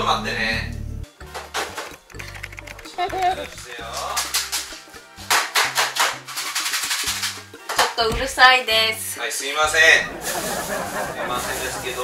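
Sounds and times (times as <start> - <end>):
background music with bass line: 0.0 - 12.0
shaker beat: 1.8 - 8.4, 10.1 - 12.0.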